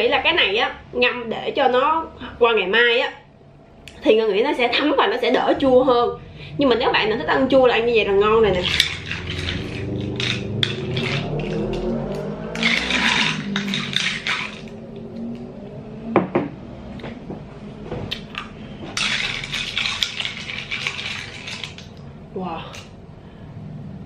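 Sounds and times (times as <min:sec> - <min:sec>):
metal spoon clinking glass: 0:08.6 - 0:11.8, 0:12.6 - 0:14.7.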